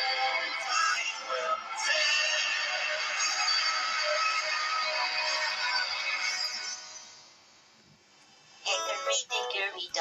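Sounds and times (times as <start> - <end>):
synthesized voice singing: 0.0 - 6.5, 8.6 - 10.0.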